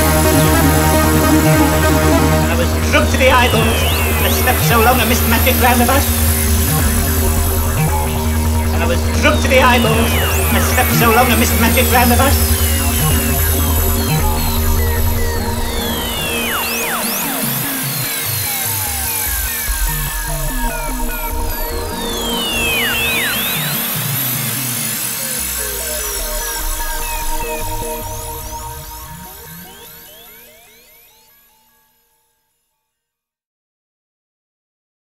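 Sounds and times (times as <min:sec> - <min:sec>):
acid dance track: 0:00.0 - 0:30.4.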